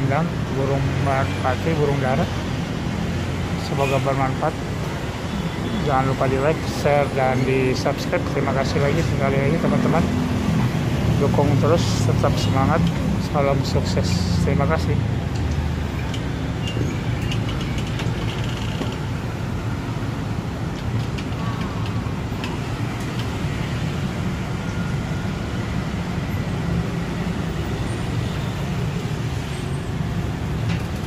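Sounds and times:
low rumble of road traffic: 0:00.0 - 0:31.0.

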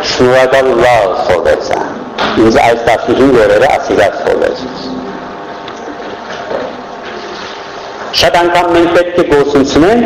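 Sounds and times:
steady hum with hiss: 0:00.0 - 0:10.0.

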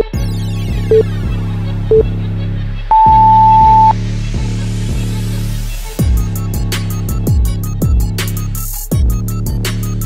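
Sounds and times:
electronic music with steady beat: 0:00.0 - 0:01.1, 0:02.9 - 0:04.0
interval timer beeping: 0:02.9 - 0:03.9.

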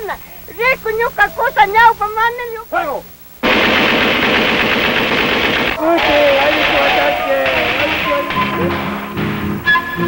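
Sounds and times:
machine gun burst: 0:03.4 - 0:09.4.

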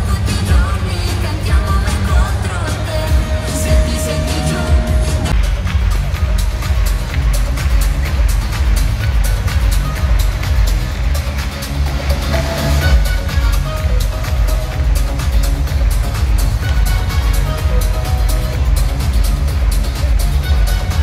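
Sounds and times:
electronic dance music over pa: 0:00.0 - 0:21.0.

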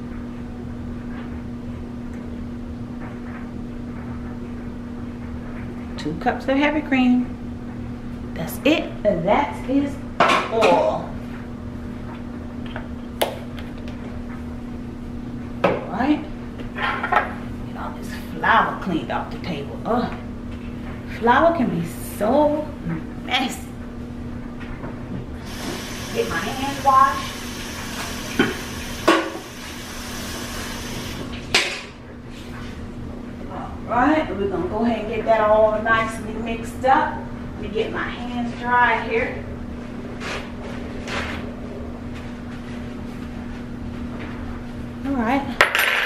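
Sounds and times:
low room hum: 0:00.0 - 0:46.0
running tap water: 0:25.4 - 0:31.4.

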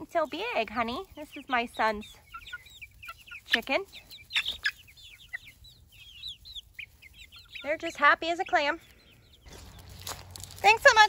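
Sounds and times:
chicks peeping and clucking: 0:00.0 - 0:11.0.

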